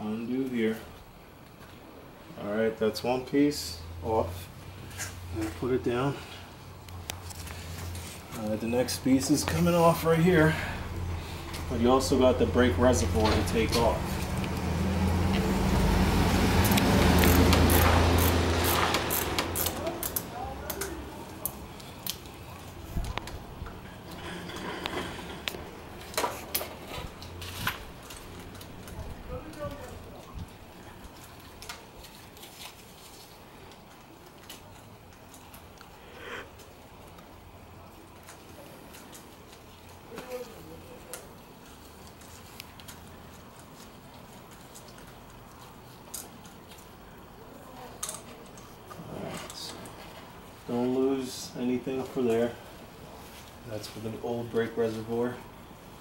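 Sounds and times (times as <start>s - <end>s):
rustling close to microphone: 7.1s - 10.4s, 21.6s - 36.7s.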